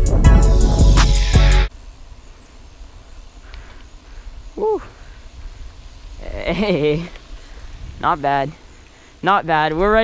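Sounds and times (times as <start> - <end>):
wind on microphone: 4.2 - 8.6
person exclaiming ooh: 4.6 - 4.9.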